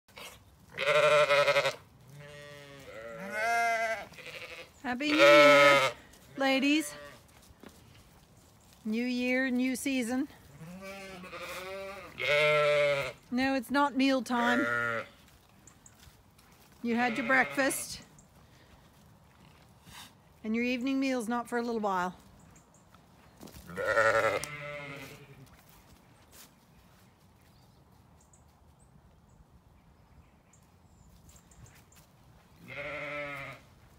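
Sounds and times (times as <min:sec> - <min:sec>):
sheep bleating: 0:00.7 - 0:06.0, 0:06.7 - 0:07.2, 0:10.5 - 0:13.2, 0:14.4 - 0:15.2, 0:17.0 - 0:18.0, 0:23.7 - 0:25.4, 0:32.6 - 0:33.7.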